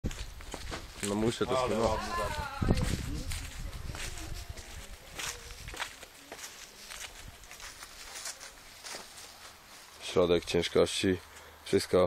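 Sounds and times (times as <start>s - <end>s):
footsteps on dry leaves: 0.0s - 11.6s.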